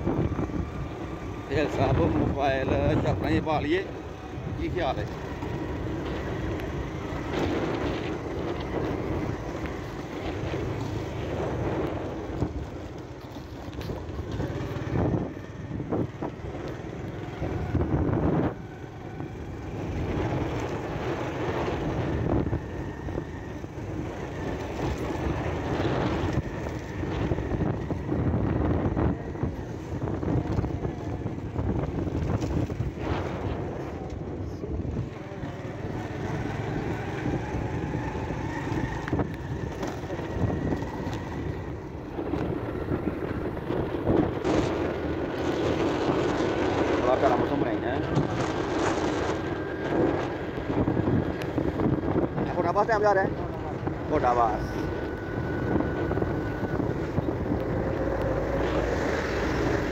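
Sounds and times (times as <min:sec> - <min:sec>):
motorcycle engine running: 0:00.0 - 0:59.9
wind rushing over microphone: 0:00.0 - 0:59.9.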